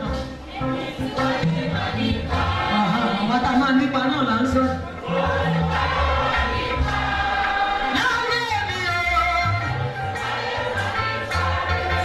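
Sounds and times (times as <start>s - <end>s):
instrumental accompaniment: 0.0s - 12.0s
voices singing gospel: 0.0s - 12.0s.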